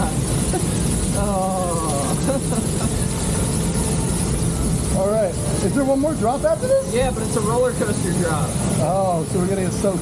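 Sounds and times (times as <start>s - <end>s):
lift mechanism rumble and rattle: 0.0s - 10.0s.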